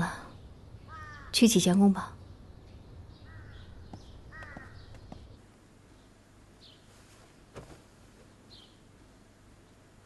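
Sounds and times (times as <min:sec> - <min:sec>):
low steady hum: 0:00.0 - 0:10.0
crows cawing faintly: 0:00.8 - 0:01.6, 0:03.2 - 0:05.4.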